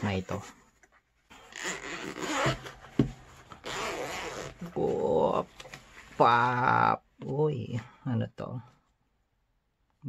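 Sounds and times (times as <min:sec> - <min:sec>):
zipper rasping open: 0:01.3 - 0:05.2.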